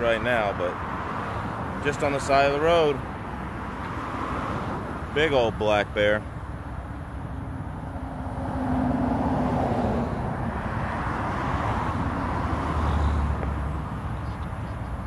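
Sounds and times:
passing road traffic: 0:00.0 - 0:15.0.

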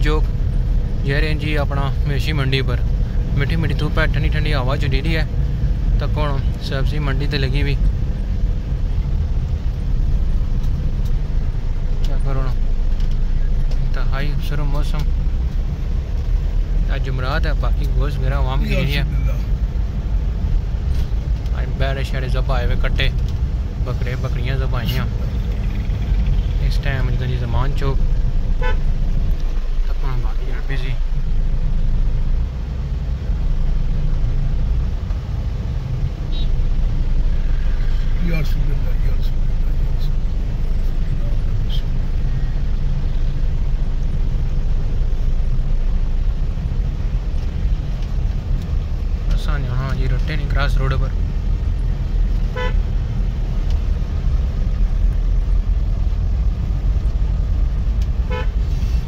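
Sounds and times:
car engine and tyres rumbling: 0:00.0 - 0:59.0
voices from the street: 0:16.5 - 0:19.8, 0:36.1 - 0:46.0
car horn toots: 0:28.6 - 0:28.9, 0:52.5 - 0:52.8, 0:58.3 - 0:58.6.

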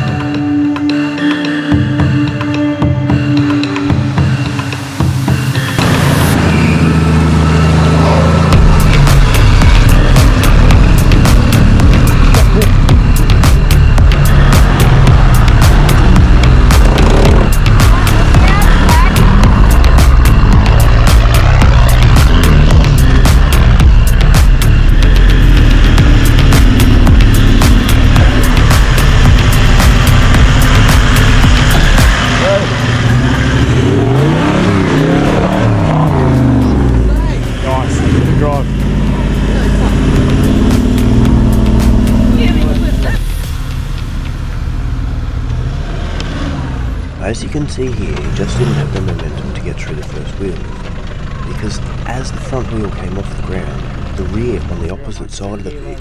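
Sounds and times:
loud music: 0:00.0 - 0:45.1
engine revving hard: 0:05.6 - 0:43.4, 0:44.7 - 0:55.9.

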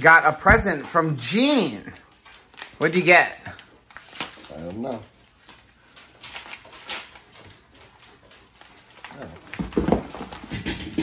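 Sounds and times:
paper packaging crinkling: 0:00.8 - 0:10.4
pet scrambling and thudding: 0:09.6 - 0:11.0.

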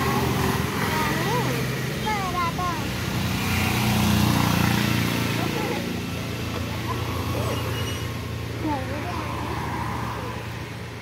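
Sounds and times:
road noise: 0:00.0 - 0:11.0.

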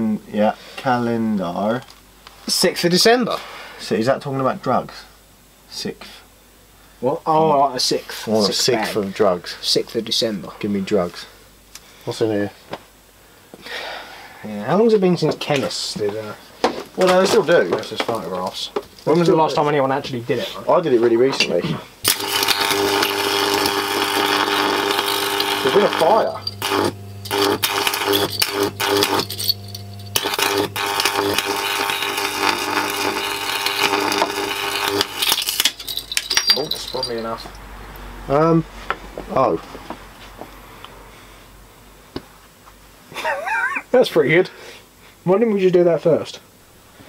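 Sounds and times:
electrical buzz with arcing crackle: 0:22.0 - 0:36.2.

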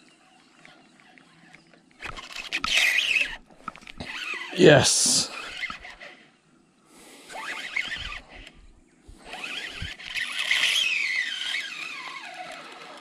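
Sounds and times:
fishing reel whining: 0:02.0 - 0:04.6, 0:05.3 - 0:06.3, 0:07.3 - 0:13.0.

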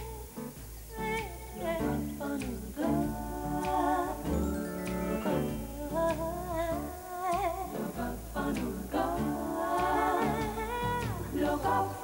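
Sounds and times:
low bass line: 0:00.0 - 0:12.0
voice singing wavering notes: 0:01.0 - 0:11.0.

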